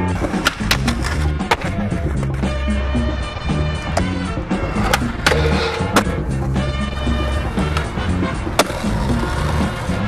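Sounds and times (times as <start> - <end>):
background music with bass line: 0.0 - 10.0.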